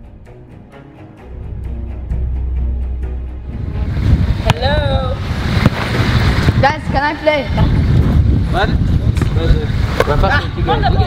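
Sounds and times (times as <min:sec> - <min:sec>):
wind rumble on microphone: 0:03.4 - 0:11.0.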